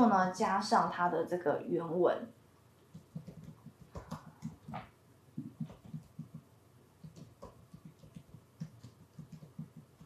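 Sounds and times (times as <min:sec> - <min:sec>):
soft keyboard keystrokes: 0:02.8 - 0:06.4, 0:07.0 - 0:10.0.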